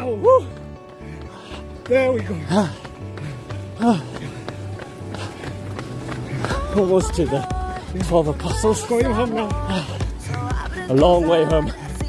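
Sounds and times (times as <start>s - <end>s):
music with repeating bass line: 2.4s - 12.0s.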